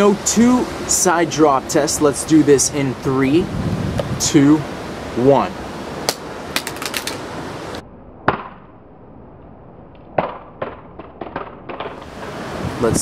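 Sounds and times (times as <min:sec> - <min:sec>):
phone cracking on concrete: 0:06.1 - 0:07.2.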